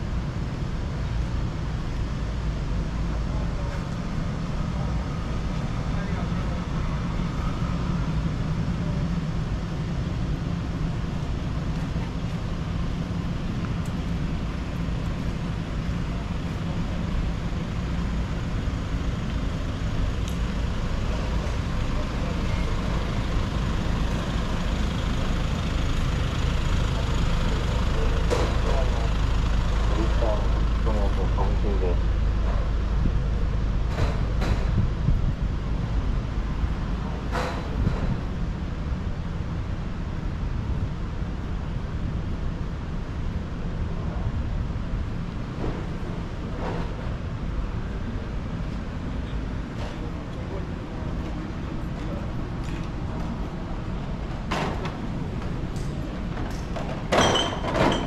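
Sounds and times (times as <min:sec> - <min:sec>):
low traffic rumble: 0:00.0 - 0:58.0
people's voices: 0:26.6 - 0:32.8, 0:49.2 - 0:56.1.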